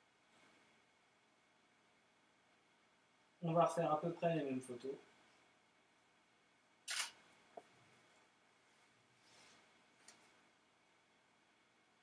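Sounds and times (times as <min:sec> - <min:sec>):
camera shutter clack: 0:06.9 - 0:07.2
faint camera click: 0:06.9 - 0:07.2.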